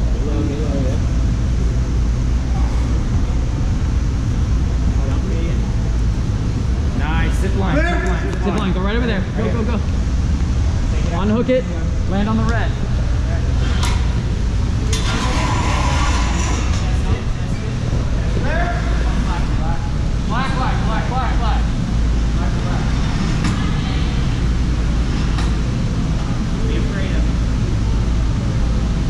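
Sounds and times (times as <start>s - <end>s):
distant voices talking: 0.0s - 29.0s
gym background rumble: 0.0s - 29.0s.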